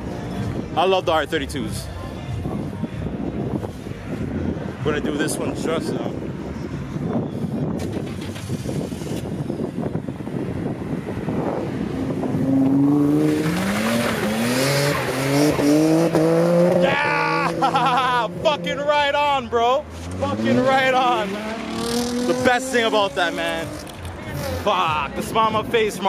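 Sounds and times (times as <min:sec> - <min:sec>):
car engine idling and revving: 0:00.0 - 0:26.0.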